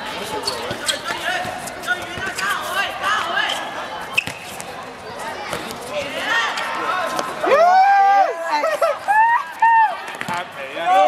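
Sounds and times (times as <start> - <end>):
football kicked and bouncing on court: 0.6 - 2.4, 4.2 - 4.8, 10.1 - 10.5
people shouting and calling: 6.1 - 10.2.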